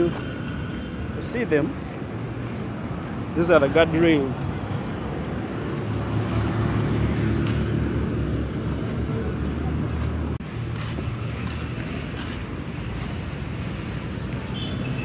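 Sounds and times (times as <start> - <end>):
road traffic: 0.0 - 15.0
vehicle engine humming: 0.0 - 15.0.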